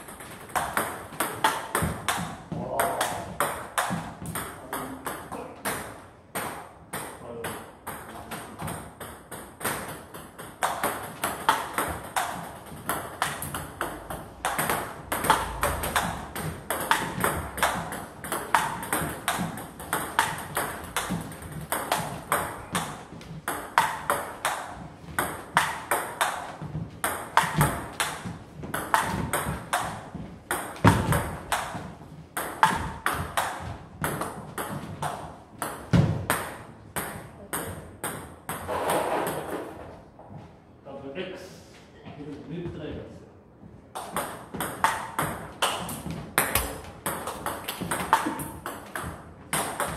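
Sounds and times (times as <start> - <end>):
ball bouncing on table: 0.1 - 39.8, 44.0 - 49.9
table tennis ball clicking off bats: 8.6 - 26.5, 44.0 - 49.9.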